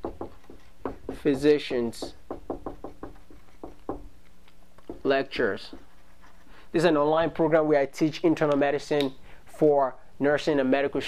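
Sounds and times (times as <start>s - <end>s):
marker tapping on whiteboard: 0.0s - 4.2s, 4.8s - 5.9s.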